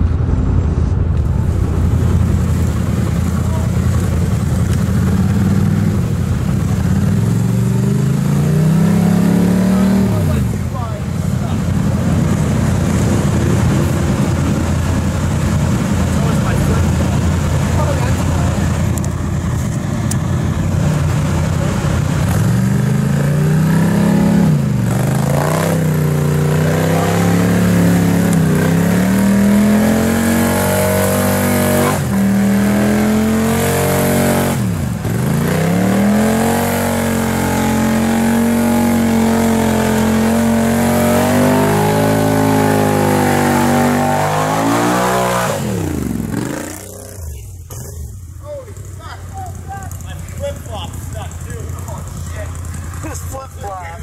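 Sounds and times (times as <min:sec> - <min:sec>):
atv engine revving: 0:01.2 - 0:54.0.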